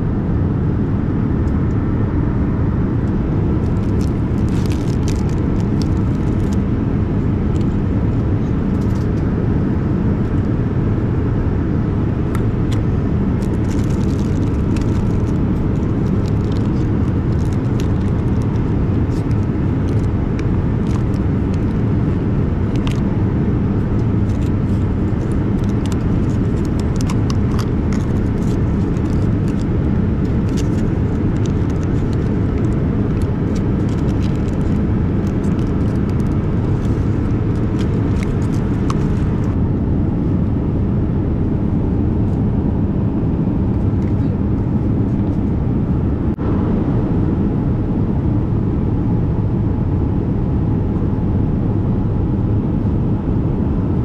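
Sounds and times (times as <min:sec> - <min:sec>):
airplane cabin roar: 0:00.0 - 0:54.0
food wrappers crinkling: 0:03.6 - 0:06.7, 0:13.4 - 0:23.1, 0:23.8 - 0:39.6.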